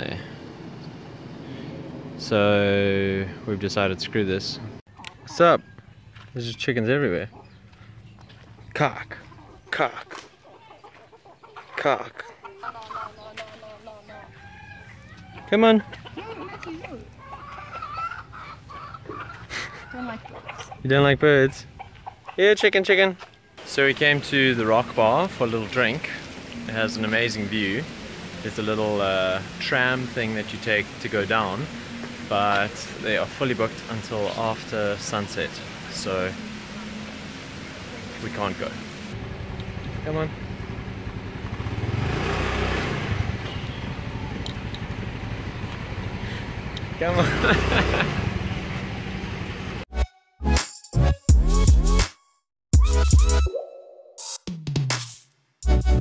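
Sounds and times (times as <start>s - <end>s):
chickens clucking: 4.9s - 39.9s
scooter engine idling: 36.1s - 49.8s.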